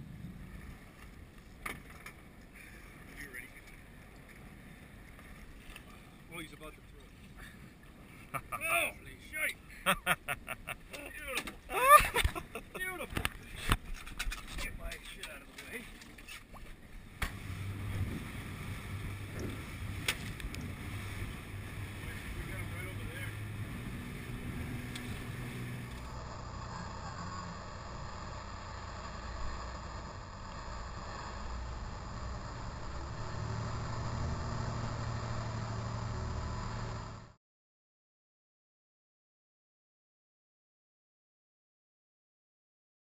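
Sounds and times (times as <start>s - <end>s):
water splashing: 15.6s - 31.5s
wind and water rushing: 16.5s - 26.7s
outboard motor humming: 16.7s - 37.4s.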